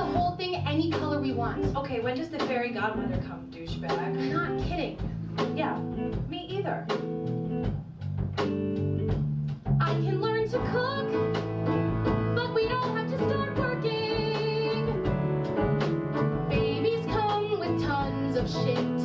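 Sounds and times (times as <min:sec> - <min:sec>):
woman singing: 0:00.0 - 0:05.0, 0:09.8 - 0:11.4, 0:12.1 - 0:15.1, 0:16.5 - 0:19.0
live band playing: 0:00.0 - 0:19.0.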